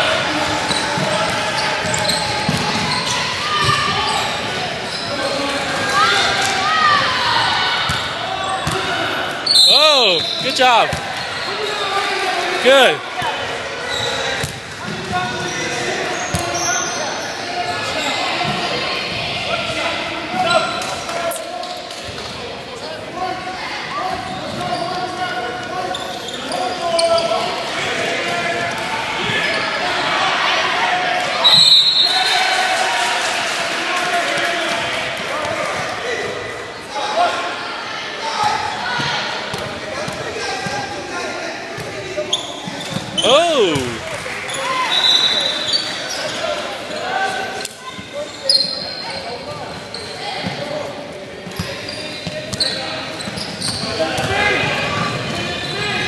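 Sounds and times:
voices echoing in hall: 0:00.0 - 0:56.0.

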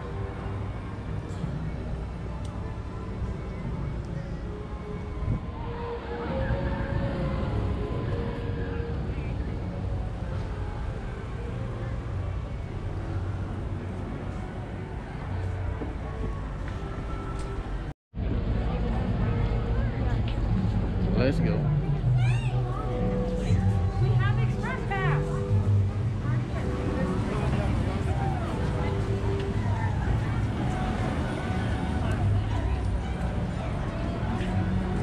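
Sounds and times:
scattered voices: 0:18.2 - 0:35.0.

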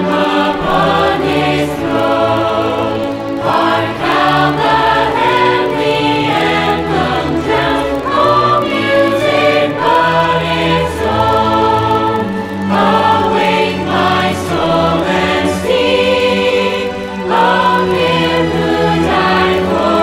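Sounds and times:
choir singing a hymn: 0:00.0 - 0:20.0
orchestra strings and brass: 0:00.0 - 0:20.0.

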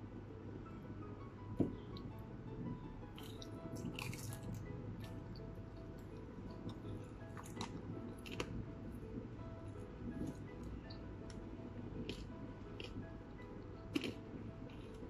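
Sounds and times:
soft background music: 0:00.0 - 0:15.0
crunchy biting and chewing: 0:13.9 - 0:15.0.

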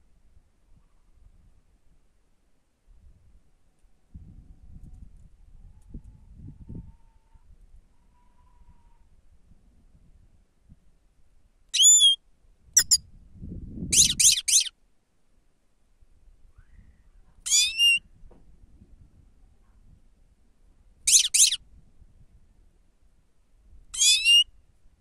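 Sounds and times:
bird calling high and sharp: 0:11.8 - 0:12.2, 0:12.8 - 0:13.0, 0:13.9 - 0:14.7, 0:17.5 - 0:18.0, 0:21.1 - 0:21.6, 0:24.0 - 0:24.5.

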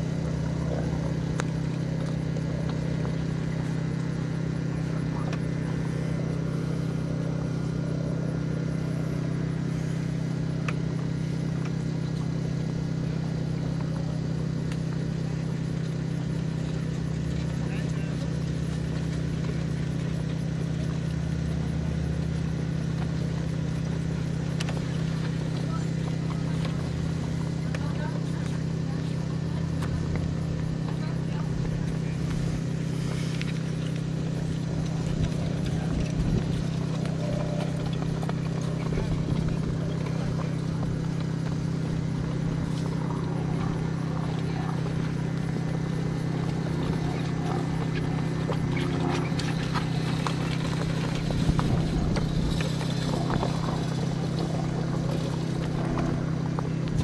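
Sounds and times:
horse hoofbeats on grass: 0:00.0 - 0:57.0
steady low hum: 0:00.0 - 0:57.0.

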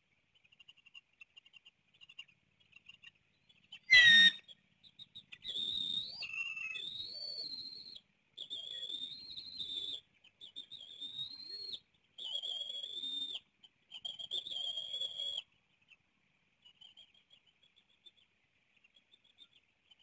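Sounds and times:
high whistled bird calls: 0:03.8 - 0:04.5
eagles calling: 0:03.9 - 0:04.4.

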